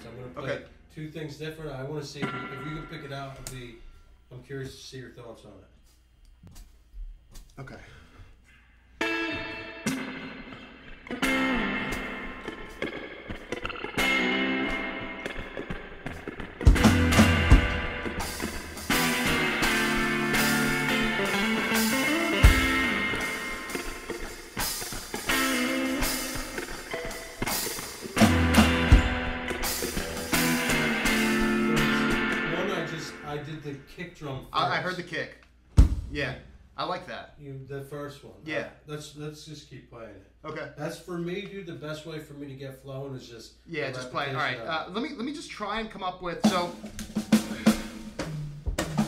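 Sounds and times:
guitar chord riff: 9.0s - 33.9s
deep thumps: 35.7s - 36.6s.

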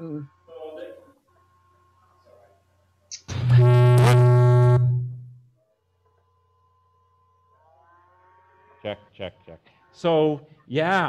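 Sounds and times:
loud electronic buzz: 3.1s - 5.5s.

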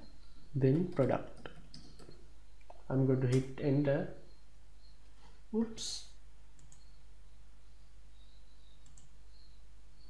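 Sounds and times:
computer mouse clicks: 6.6s - 7.0s, 8.8s - 9.2s.

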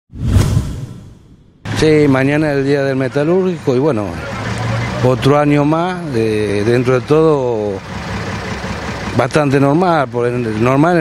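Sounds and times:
whoosh over low rumble: 0.1s - 1.8s
man's voice: 1.7s - 7.8s, 9.1s - 11.0s.

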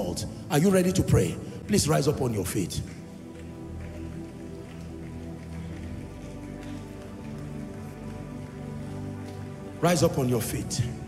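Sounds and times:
slow sustained chords: 0.0s - 11.0s
crowd rustling and shuffling: 2.9s - 10.6s.

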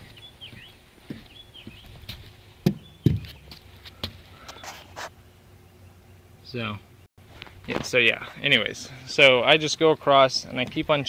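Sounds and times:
knocks on wooden deck: 2.6s - 3.4s.

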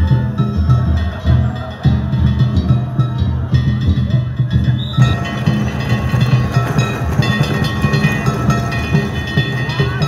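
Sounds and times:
taiko drums beating fast: 0.0s - 10.0s
small hand gongs ringing: 4.8s - 10.0s.

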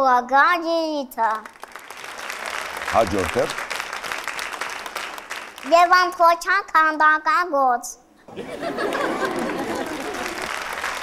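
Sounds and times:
audience applauding: 1.4s - 5.8s, 8.3s - 11.0s.

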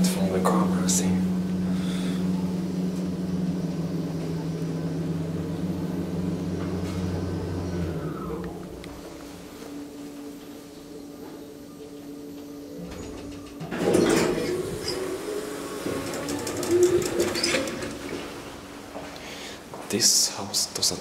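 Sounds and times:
elevator door clunk: 0.0s - 9.4s, 12.2s - 18.8s
descending whine: 0.0s - 19.4s
elevator motor hum: 0.0s - 19.8s.

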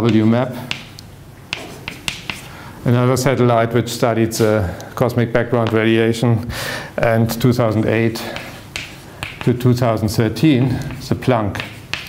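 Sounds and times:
chalk tapping on blackboard: 0.0s - 2.5s, 8.1s - 9.8s, 10.4s - 12.0s.

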